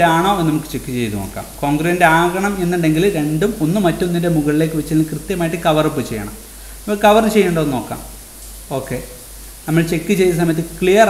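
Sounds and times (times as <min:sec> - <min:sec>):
person speaking: 0:00.0 - 0:11.0.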